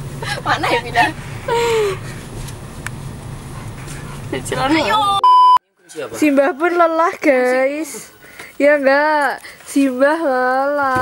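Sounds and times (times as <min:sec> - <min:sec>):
electronic censor bleep: 0:05.2 - 0:05.6.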